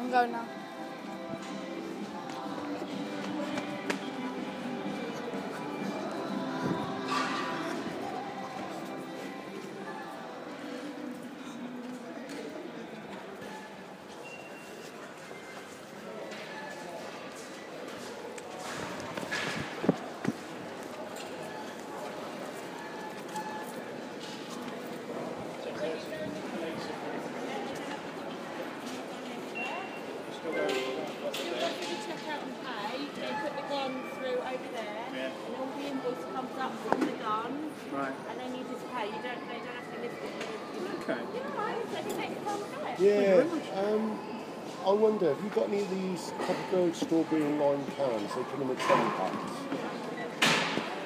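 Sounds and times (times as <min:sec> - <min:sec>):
background music: 0:00.0 - 0:12.0
indistinct voices: 0:00.0 - 0:13.8.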